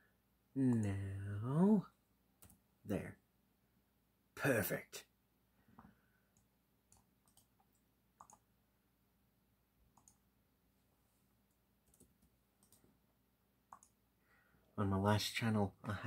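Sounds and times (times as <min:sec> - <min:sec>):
faint computer clicks: 0:05.7 - 0:08.4, 0:11.8 - 0:12.9, 0:13.7 - 0:14.0.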